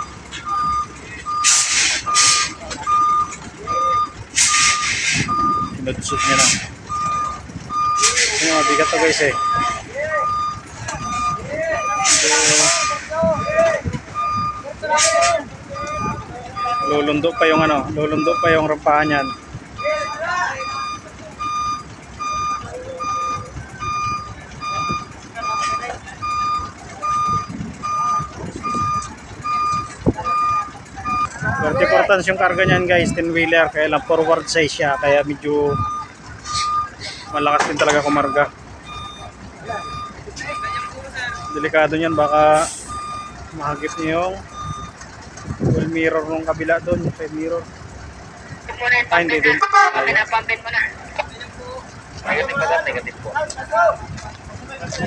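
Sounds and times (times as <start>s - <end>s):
truck engine running: 0.0s - 55.0s
truck reversing alarm beeping: 0.0s - 55.0s
loud air hisses: 1.4s - 2.6s, 4.4s - 5.3s, 12.0s - 13.0s.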